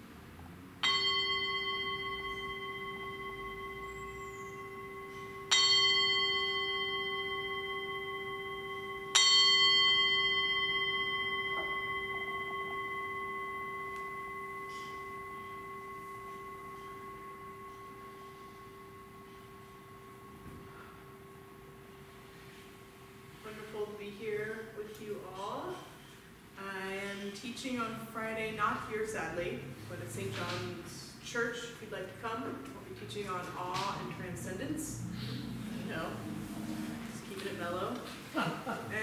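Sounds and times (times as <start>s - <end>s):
low hum: 0.0s - 25.5s, 34.0s - 39.0s
metal singing bowl ringing: 0.8s - 23.9s.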